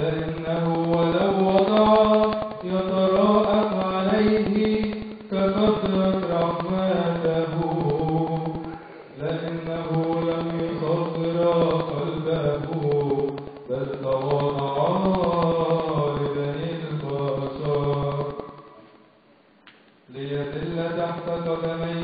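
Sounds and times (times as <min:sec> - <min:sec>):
man chanting into a microphone: 0:00.0 - 0:18.8, 0:20.1 - 0:22.0.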